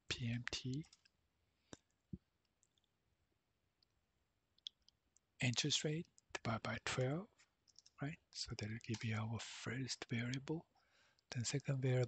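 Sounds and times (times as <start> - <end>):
computer mouse clicks: 7.7 - 9.2.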